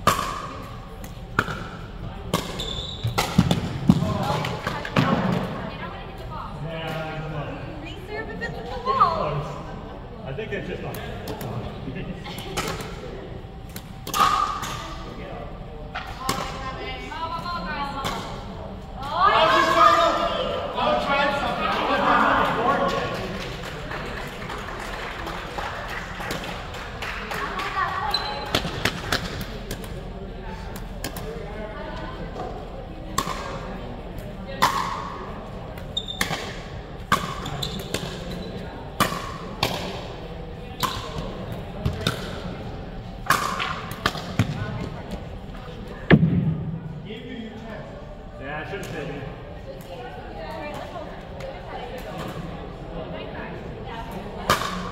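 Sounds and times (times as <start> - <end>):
loud voices: 15.9 - 35.8
paddles hitting plastic ball: 43.3 - 44.9.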